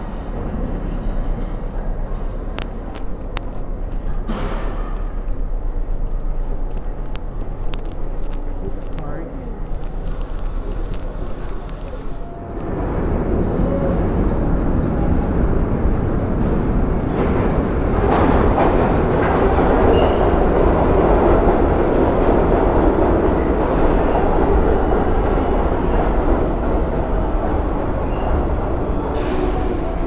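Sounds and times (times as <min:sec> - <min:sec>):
subway train wheels rumbling on rails: 0:00.0 - 0:30.0.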